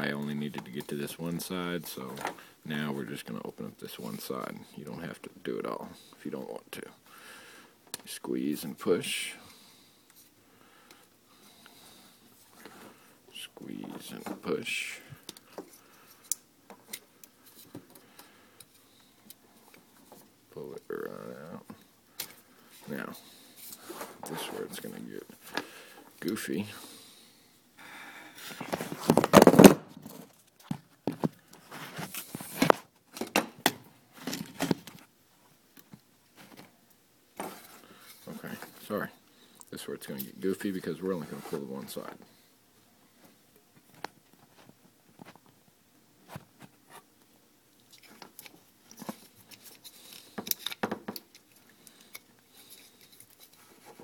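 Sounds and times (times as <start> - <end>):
plastic connector handling noise: 47.7 - 54.0.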